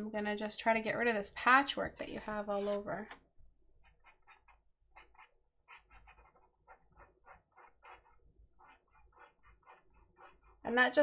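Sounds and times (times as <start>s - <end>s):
stylus scratching on drawing tablet: 0.0s - 11.0s.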